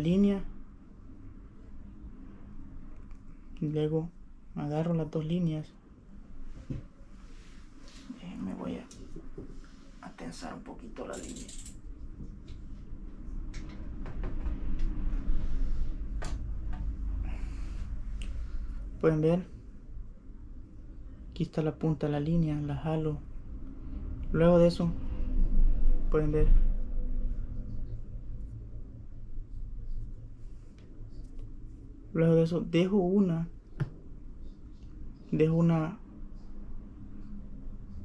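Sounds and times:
low steady hum: 0.0 - 38.0
steady low rumble: 0.0 - 38.0.

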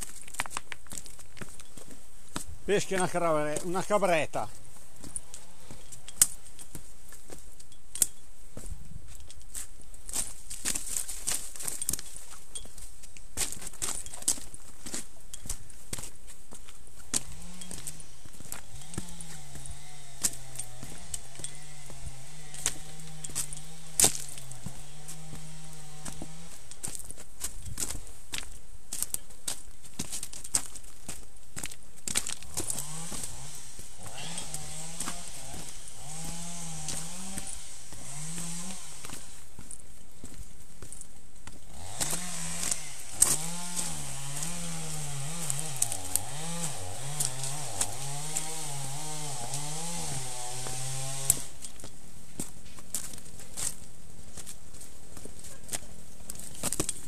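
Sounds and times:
stones clicking and knocking: 0.0 - 3.7, 56.3 - 57.0.

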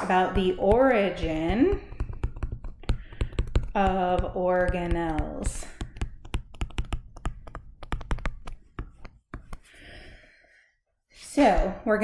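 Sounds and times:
stylus tapping on tablet screen: 0.0 - 10.1.

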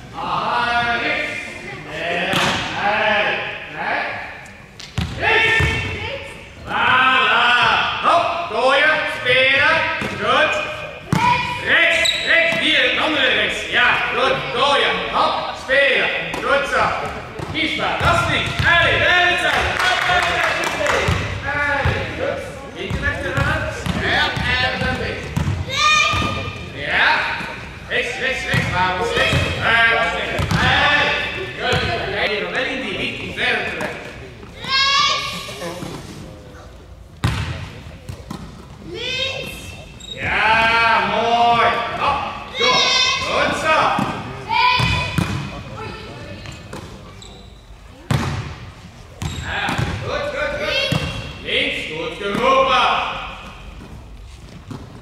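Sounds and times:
voices in a hall: 0.0 - 55.0
volleyballs hit and bouncing: 2.2 - 2.8, 16.1 - 27.8, 28.4 - 32.1, 37.1 - 38.9, 43.2 - 47.2, 48.0 - 55.0.

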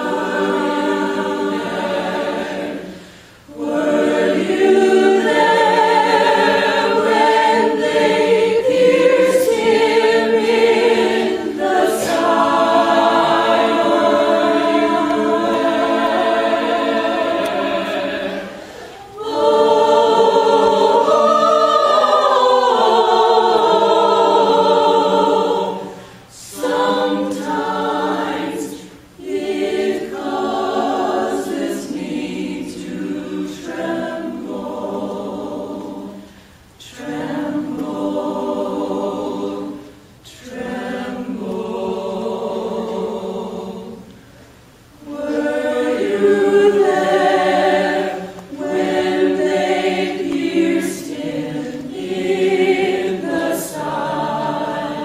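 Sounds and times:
choir singing long held chords: 0.0 - 55.0.

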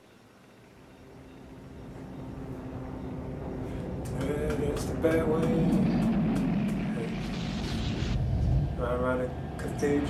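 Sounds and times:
jet engines flying past: 0.6 - 10.0.

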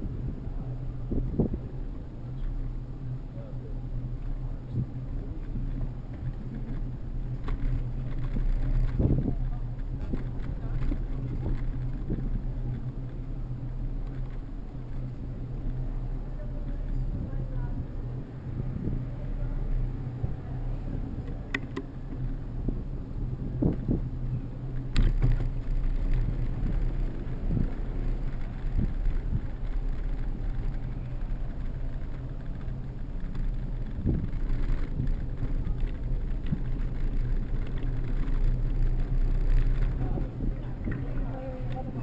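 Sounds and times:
bicycle tyres rumbling on road: 0.0 - 42.0
bicycle knocking over bumps: 24.8 - 42.0.

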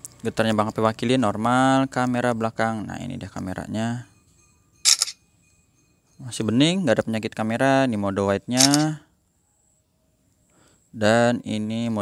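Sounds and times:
camera shutter double click: 4.9 - 5.2, 8.6 - 8.9.

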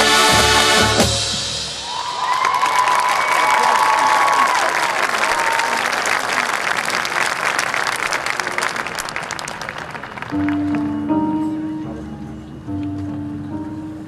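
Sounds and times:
high whoops: 1.8 - 5.9
crowd applauding and cheering: 1.8 - 11.2.

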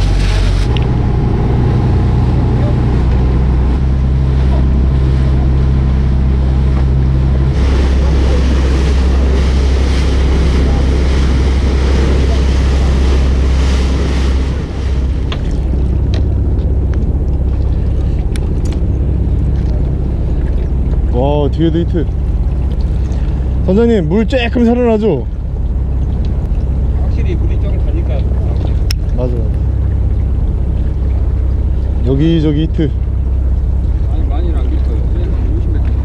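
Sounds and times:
boat engine running: 0.0 - 36.0
rushing water wash: 0.0 - 36.0
wind: 0.0 - 36.0.

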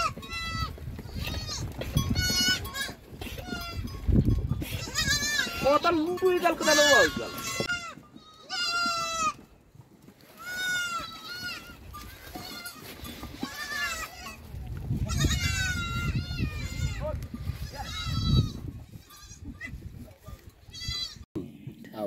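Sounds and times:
goats bleating: 0.0 - 9.5, 10.3 - 21.2.

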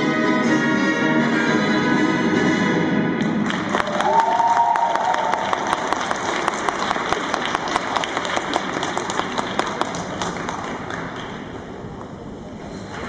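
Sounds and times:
audience applause: 3.3 - 11.4.

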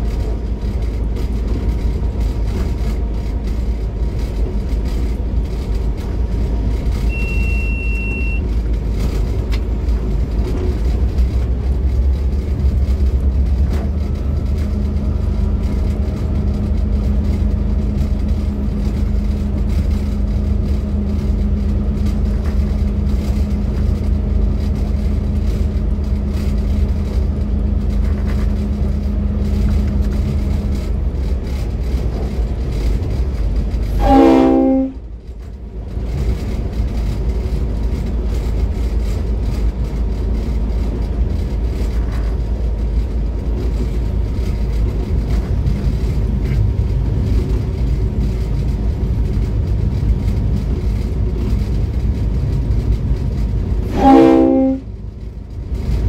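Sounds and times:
locomotive running rumble: 0.0 - 56.0
short high beep: 7.1 - 8.4
locomotive horn blast: 34.0 - 35.1, 53.9 - 55.0.

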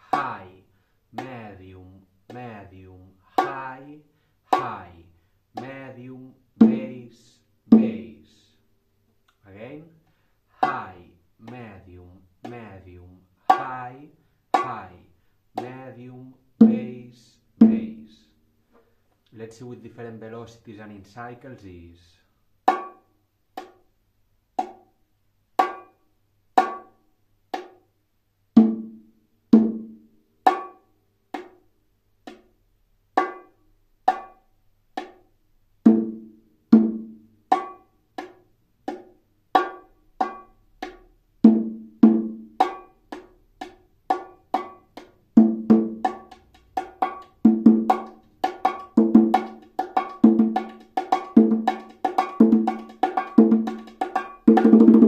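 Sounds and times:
bongos playing: 0.0 - 1.6, 2.2 - 2.6, 3.2 - 3.9, 4.5 - 5.0, 6.6 - 7.1, 7.7 - 8.1, 10.6 - 11.8, 13.4 - 13.9, 14.5 - 15.0, 15.6 - 16.0, 16.6 - 18.0, 22.7 - 23.9, 24.6 - 24.9, 25.6 - 26.0, 26.6 - 27.9, 28.6 - 32.6, 33.2 - 35.3, 35.9 - 55.0.

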